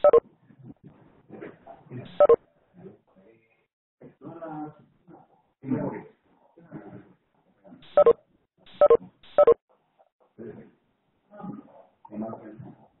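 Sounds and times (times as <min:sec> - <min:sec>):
short pitched beeps over phone line: 0:00.0 - 0:00.2, 0:02.1 - 0:02.4, 0:07.9 - 0:09.6.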